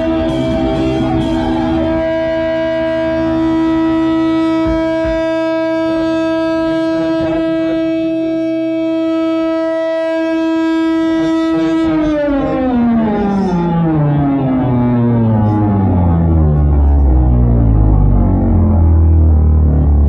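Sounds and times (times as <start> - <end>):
low thumps: 0.0 - 9.3, 10.9 - 20.0
electric guitar feedback drone: 0.0 - 20.0.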